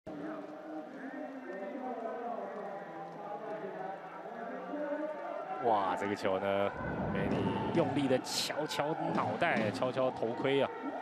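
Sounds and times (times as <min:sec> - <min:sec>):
crowd chanting and cheering: 0:00.1 - 0:11.0.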